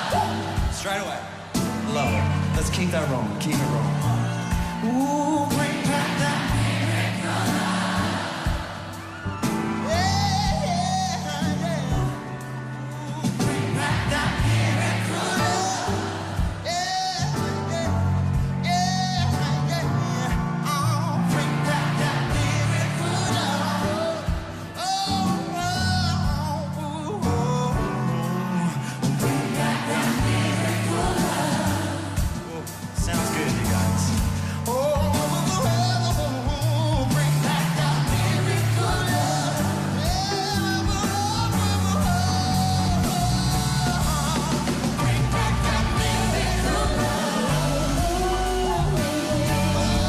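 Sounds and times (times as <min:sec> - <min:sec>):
crowd singing along: 0:00.0 - 0:02.6, 0:04.0 - 0:18.6, 0:21.2 - 0:25.7, 0:28.5 - 0:34.4, 0:37.0 - 0:50.0
man singing lead: 0:00.0 - 0:06.6, 0:09.7 - 0:13.7, 0:15.1 - 0:29.7, 0:30.9 - 0:50.0
live band music: 0:00.0 - 0:50.0.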